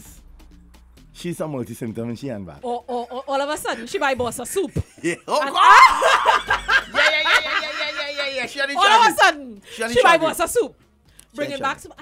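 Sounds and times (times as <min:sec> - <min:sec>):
woman laughing: 0:02.7 - 0:08.5
people laughing: 0:02.9 - 0:09.0.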